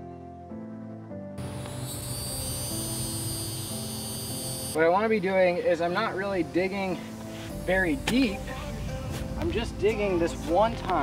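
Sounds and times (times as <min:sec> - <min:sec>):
soft piano-like background music: 0:00.0 - 0:11.0
thin high-pitched hum: 0:01.4 - 0:04.8.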